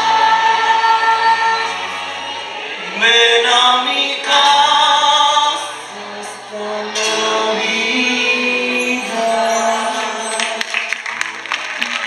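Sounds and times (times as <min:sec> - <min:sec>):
choir singing held note: 0:05.5 - 0:10.6.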